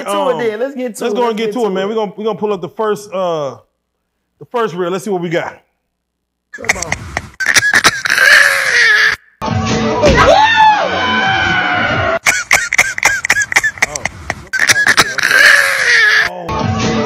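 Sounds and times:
sharp clicks: 0:06.6 - 0:08.3, 0:12.2 - 0:15.5
music: 0:09.4 - 0:12.1, 0:16.3 - 0:17.0.

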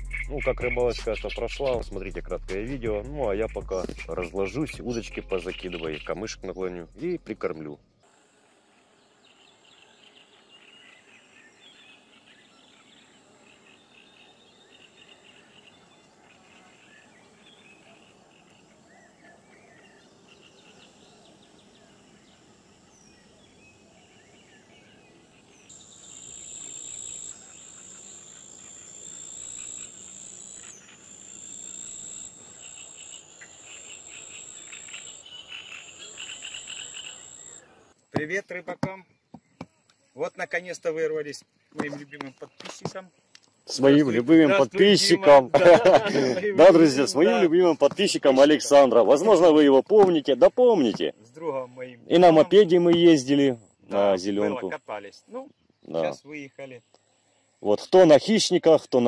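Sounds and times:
insects chirping: 0:03.0 - 0:38.6, 0:39.3 - 0:59.0
birds calling: 0:03.5 - 0:38.1
high-pitched insect trill: 0:08.1 - 0:37.7.

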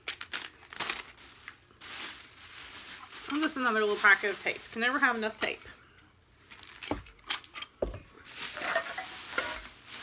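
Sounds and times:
plastic bag rustling: 0:00.0 - 0:05.7, 0:06.4 - 0:07.0, 0:08.2 - 0:10.0.

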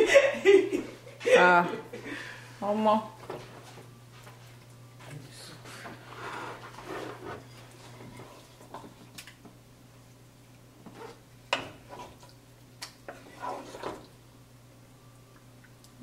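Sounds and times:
spoon scraping soup: 0:06.0 - 0:09.0, 0:10.8 - 0:14.2
low hum: 0:14.1 - 0:16.0.

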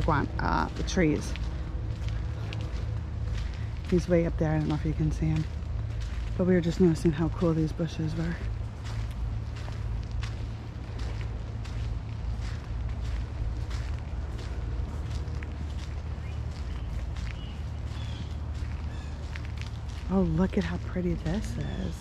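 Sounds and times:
footsteps on paved path: 0:00.0 - 0:22.0
low rumble: 0:00.0 - 0:22.0.

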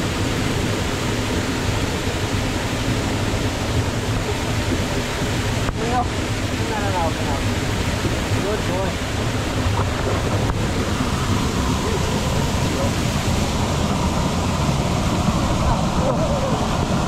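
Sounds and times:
water rushing over rocks: 0:00.0 - 0:17.0.

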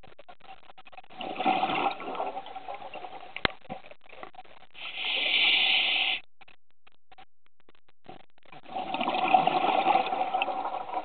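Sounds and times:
rush of exhaled bubbles underwater: 0:01.1 - 0:03.2, 0:08.6 - 0:11.0.

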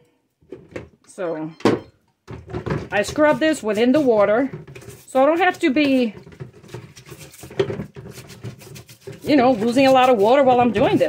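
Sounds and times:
scrubbing plastic parts in water: 0:02.9 - 0:11.0.

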